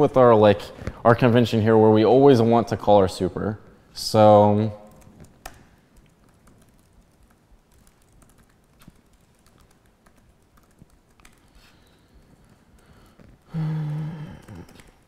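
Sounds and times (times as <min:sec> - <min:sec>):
computer keyboard typing: 0:04.8 - 0:15.0
person humming: 0:13.5 - 0:14.9.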